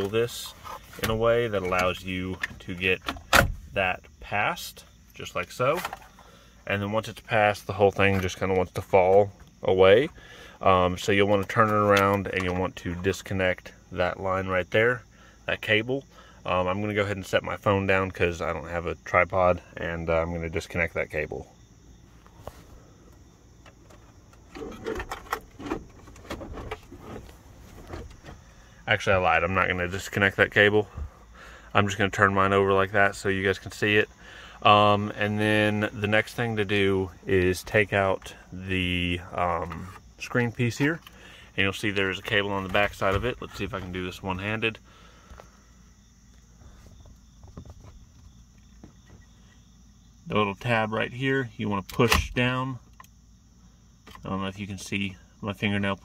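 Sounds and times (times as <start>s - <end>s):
low steady background noise: 0.0s - 56.0s.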